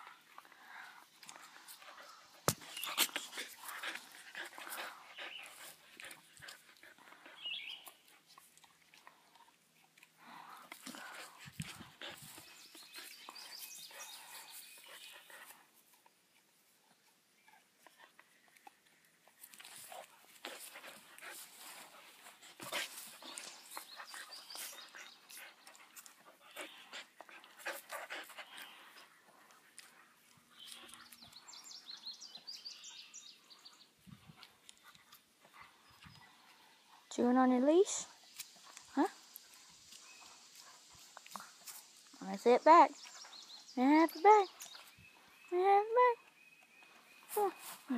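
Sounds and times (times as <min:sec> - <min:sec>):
dog chewing leash: 0:00.2 - 0:15.3.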